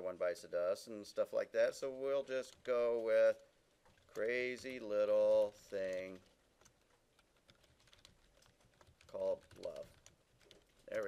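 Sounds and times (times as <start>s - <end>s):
keyboard typing clicks: 5.8s - 11.0s.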